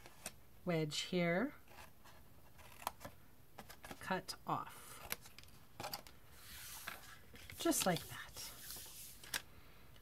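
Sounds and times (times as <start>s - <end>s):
card rustling: 1.6s - 4.1s, 4.9s - 9.5s.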